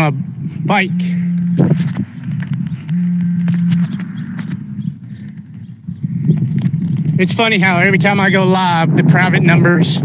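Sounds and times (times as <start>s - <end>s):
bicycle ride rumble: 0.0s - 10.0s
steady low hum: 0.1s - 8.2s.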